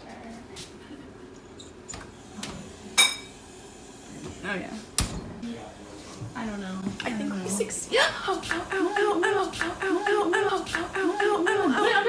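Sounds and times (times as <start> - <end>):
low voices: 5.4 - 12.0.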